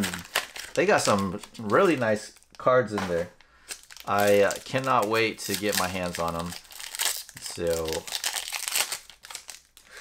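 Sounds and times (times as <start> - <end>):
foil wrapper crinkling: 0.0 - 2.7, 3.6 - 10.0.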